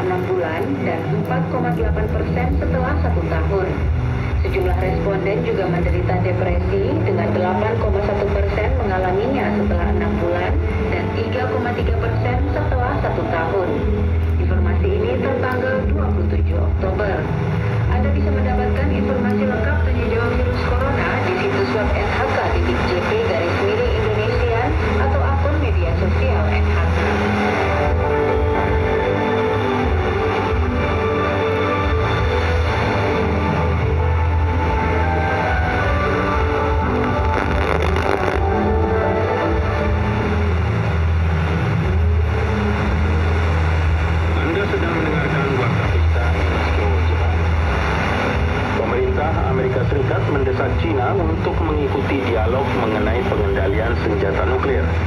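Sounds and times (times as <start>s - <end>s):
news reader's voice on radio: 0.0s - 27.3s, 48.8s - 55.0s
radio static: 0.0s - 28.7s, 36.6s - 55.0s
steady low hum: 0.0s - 51.9s.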